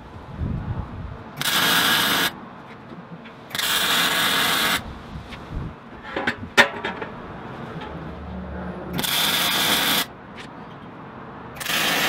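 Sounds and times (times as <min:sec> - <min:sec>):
welder hissing: 0:01.4 - 0:02.4, 0:09.0 - 0:10.1, 0:11.6 - 0:12.0.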